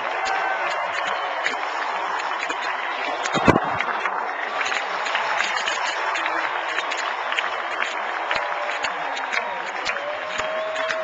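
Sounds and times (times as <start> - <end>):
stadium crowd cheering and clapping: 0.0 - 11.0.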